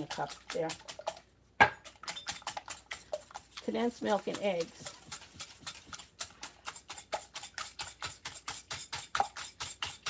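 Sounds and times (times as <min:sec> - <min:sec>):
fork beating eggs in glass bowl: 0:00.0 - 0:10.0.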